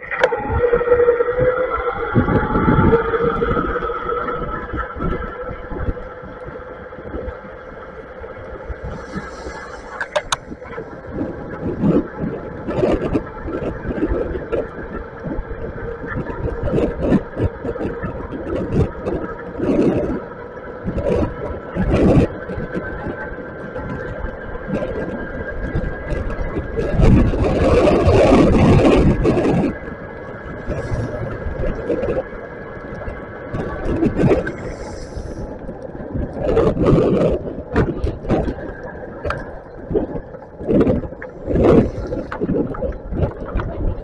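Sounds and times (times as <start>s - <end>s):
wind buffeting microphone: 0.0s - 44.0s
tyres on wet pavement: 28.9s - 35.4s.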